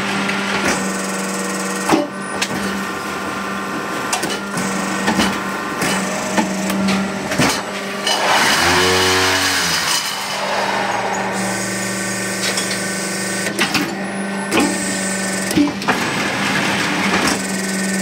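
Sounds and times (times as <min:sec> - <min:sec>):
machine motor hum: 0:04.4 - 0:15.6
rushing surge with low drone: 0:07.8 - 0:13.6.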